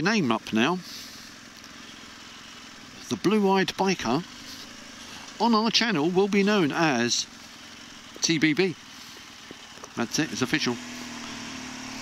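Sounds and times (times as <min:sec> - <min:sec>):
motorcycle engine running: 0:00.0 - 0:12.0
wind and road noise: 0:00.8 - 0:12.0.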